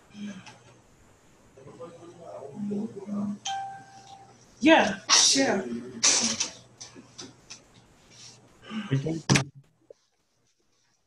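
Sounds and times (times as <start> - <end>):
quiet speech: 1.6 - 3.5.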